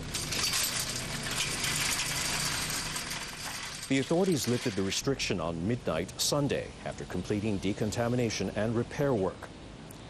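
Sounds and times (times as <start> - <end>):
metal barrier gate rattling: 0.0 - 5.1.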